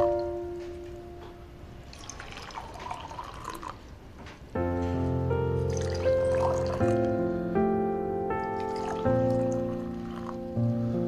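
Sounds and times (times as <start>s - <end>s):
water pouring into cup: 1.8s - 3.9s, 5.7s - 7.0s, 8.6s - 10.4s
water dripping: 1.8s - 4.0s, 5.7s - 7.2s, 8.5s - 10.4s.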